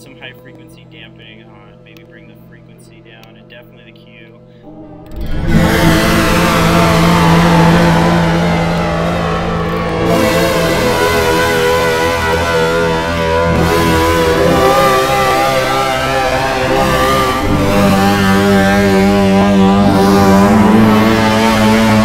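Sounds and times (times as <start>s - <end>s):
distorted electric guitar: 4.6s - 22.0s.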